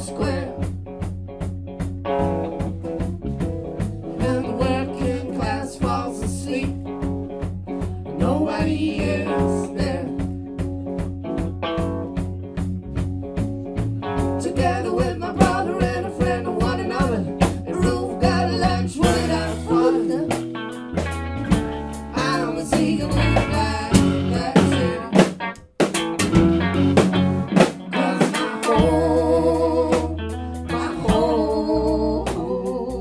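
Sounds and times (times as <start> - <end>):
electric and acoustic guitars: 0.0 - 33.0
steady drum beat: 0.0 - 33.0.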